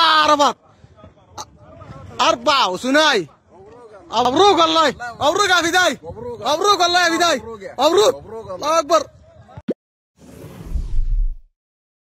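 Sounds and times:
whoosh sound effect: 10.2 - 11.5
deep low boom: 10.5 - 11.5.

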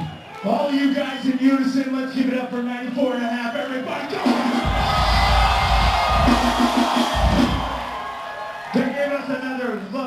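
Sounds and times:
crowd cheering: 0.0 - 1.6, 3.6 - 9.8.

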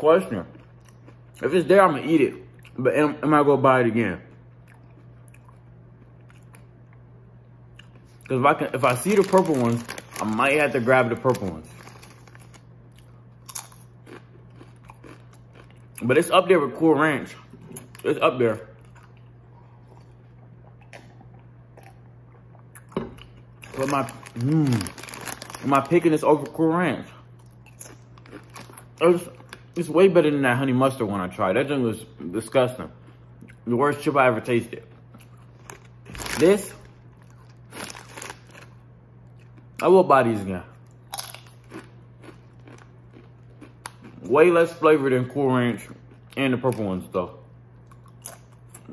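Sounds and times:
chip crunching: 7.8 - 30.0, 34.4 - 39.9, 40.8 - 47.0.

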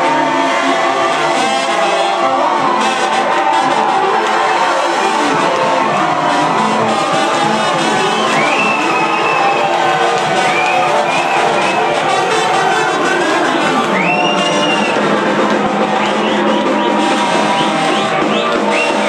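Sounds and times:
crowd cheering: 0.0 - 19.0
drums: 0.0 - 19.0
saxophone: 0.0 - 19.0
trumpet: 0.0 - 19.0.

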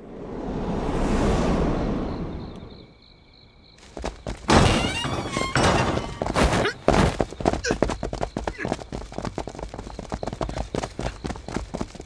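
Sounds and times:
rush of noise: 0.0 - 2.8.

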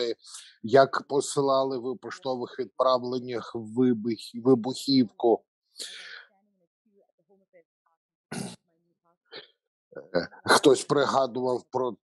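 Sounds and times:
person clearing throat: 8.3 - 8.6.

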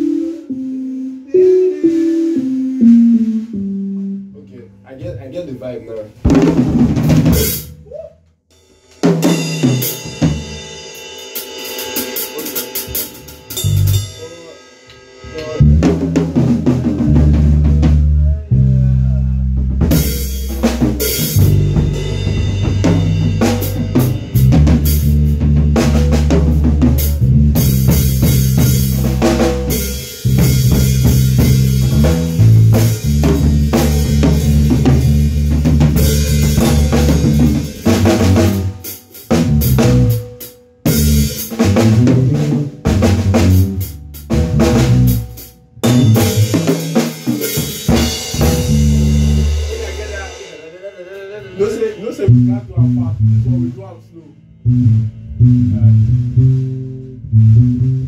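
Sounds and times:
electric bass guitar: 0.0 - 4.4, 13.5 - 14.1, 15.4 - 47.0, 47.6 - 49.9, 52.2 - 58.0
drum kit playing: 0.0 - 5.4, 6.2 - 8.0, 8.6 - 18.7, 19.4 - 53.8, 54.5 - 58.0.

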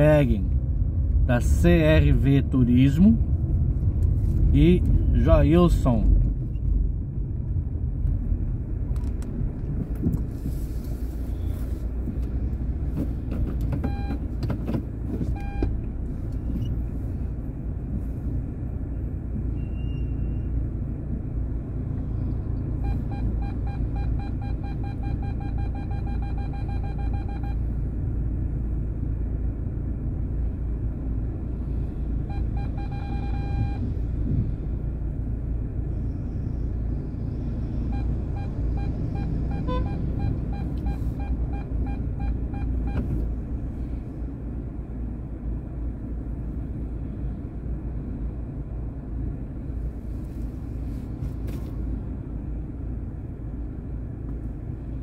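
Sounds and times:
car engine rumble: 0.0 - 55.0
road noise: 0.0 - 55.0.

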